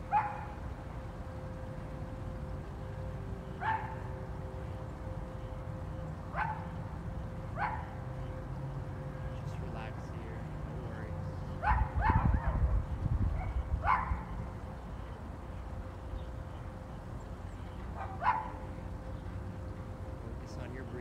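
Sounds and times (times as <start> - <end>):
dog barking: 0.1 - 0.6, 3.6 - 4.0, 6.4 - 6.7, 7.6 - 7.9, 11.6 - 12.6, 13.4 - 14.2, 18.0 - 18.6
wind rumbling on microphone: 11.6 - 16.4.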